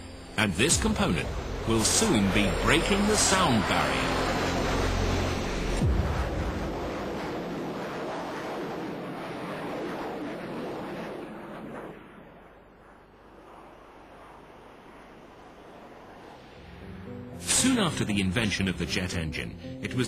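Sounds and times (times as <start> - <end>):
jet aircraft flying past: 0.0 - 19.8.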